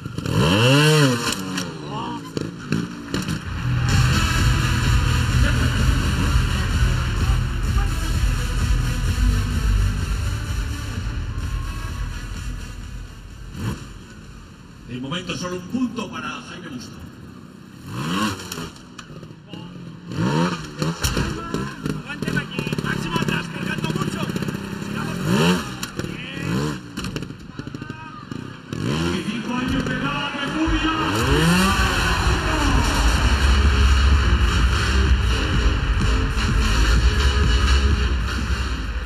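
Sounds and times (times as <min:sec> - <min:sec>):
motorcycle engine revving: 0:00.0 - 0:16.1, 0:16.9 - 0:39.0
crowd cheering and applauding: 0:30.9 - 0:38.3.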